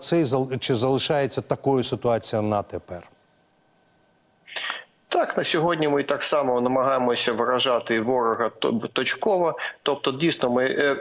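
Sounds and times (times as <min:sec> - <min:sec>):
man speaking: 0:00.0 - 0:03.2, 0:04.5 - 0:11.0
man's quick intake of breath: 0:04.5 - 0:04.9.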